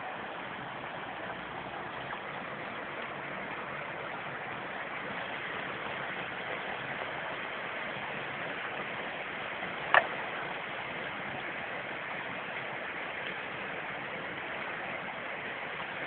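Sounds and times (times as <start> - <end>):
stream water flowing over rocks: 0.0 - 16.0.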